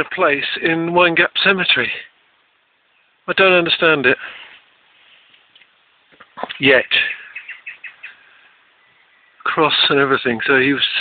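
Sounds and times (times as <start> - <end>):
small bird chirping: 5.0 - 9.5.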